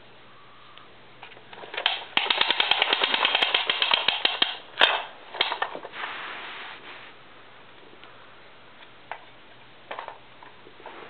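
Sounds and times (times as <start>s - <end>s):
toy truck wheels clicking on rug: 1.6s - 5.7s.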